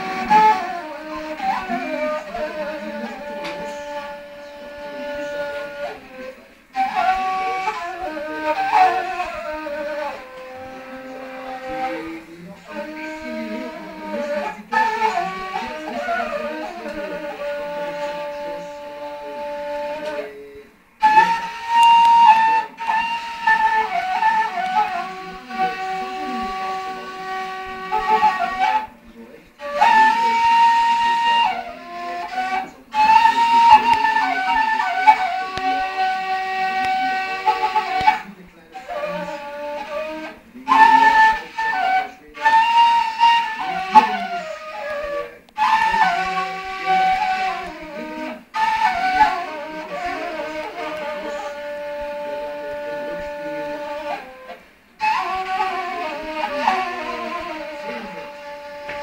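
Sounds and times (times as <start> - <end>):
end-blown flute melody: 0.0 - 59.0.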